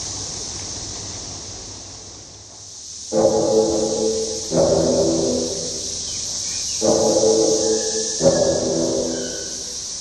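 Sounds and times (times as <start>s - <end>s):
cicadas buzzing: 0.0s - 10.0s
music of held chords: 3.1s - 10.0s.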